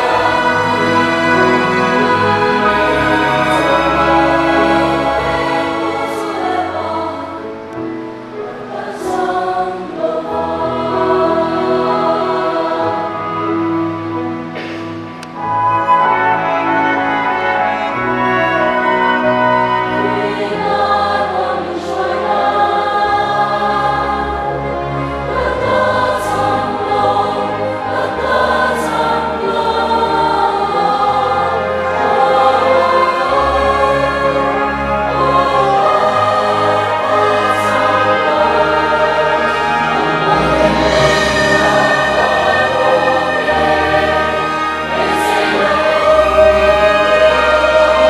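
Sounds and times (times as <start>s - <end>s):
choir singing a hymn: 0.0s - 48.0s.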